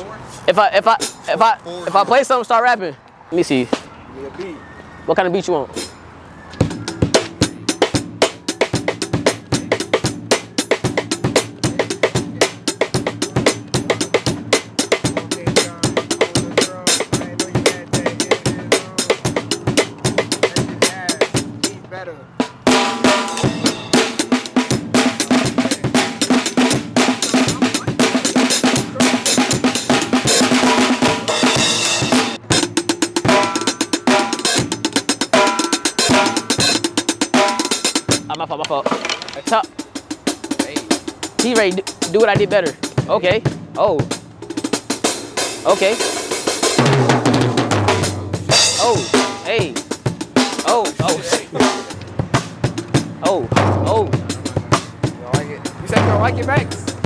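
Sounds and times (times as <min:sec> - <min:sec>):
drum kit beat: 0:00.5 - 0:01.5, 0:05.7 - 0:57.0.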